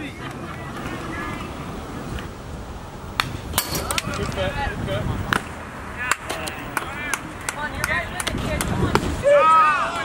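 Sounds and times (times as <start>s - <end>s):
people shouting calls: 9.0s - 10.0s.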